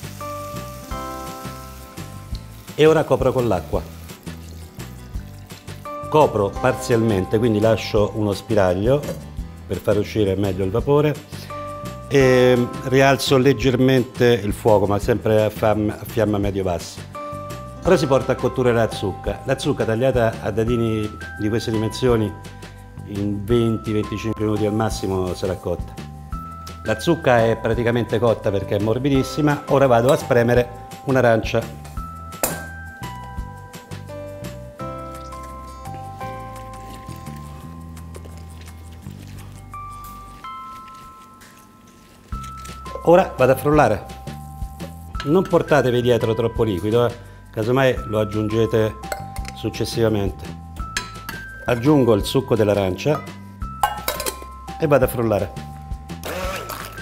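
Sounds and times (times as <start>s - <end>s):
background music: 0.0s - 57.0s
water pouring into saucepan: 2.3s - 6.0s
metallic clink on juicer: 53.8s - 54.5s.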